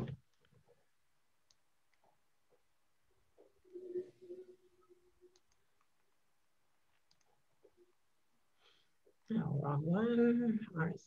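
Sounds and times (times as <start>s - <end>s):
faint hum: 0.0s - 11.0s
computer mouse clicks: 5.3s - 6.2s, 6.9s - 7.8s.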